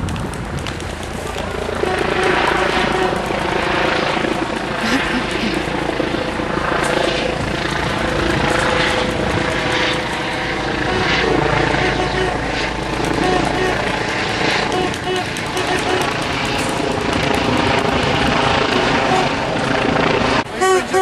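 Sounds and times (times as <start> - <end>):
helicopter engine and rotor: 0.7 - 20.6
people's voices: 1.0 - 6.0, 20.4 - 21.0.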